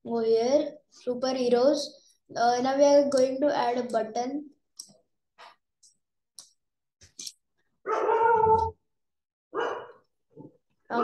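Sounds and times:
dog barking: 7.8 - 8.7, 9.5 - 10.1.

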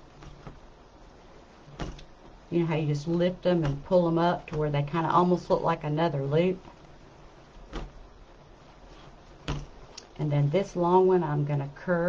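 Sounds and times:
soft ribbon handling noise: 0.0 - 10.9.

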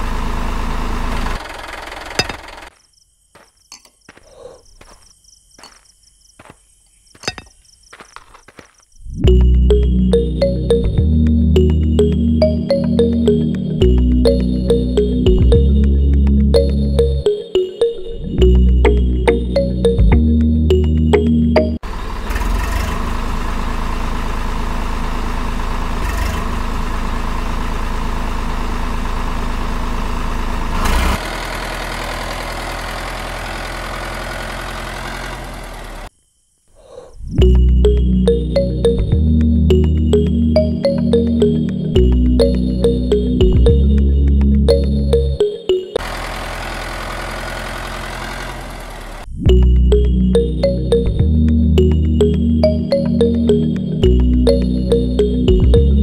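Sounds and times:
model tractor motor humming: 0.0 - 2.7, 21.8 - 36.1, 46.0 - 49.3.

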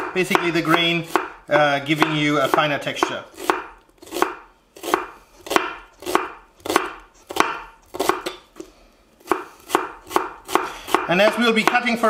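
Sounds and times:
knife slicing onions on wooden board: 0.0 - 8.6, 9.2 - 11.9.

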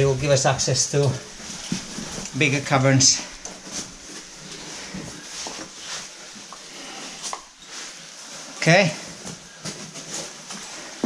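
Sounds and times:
faint rustle: 0.0 - 11.0
clothing brushing against rock: 0.1 - 11.0.

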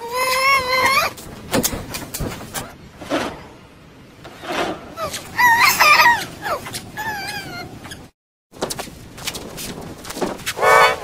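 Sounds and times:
pitch-shifted toddler yelling: 5.0 - 7.6.

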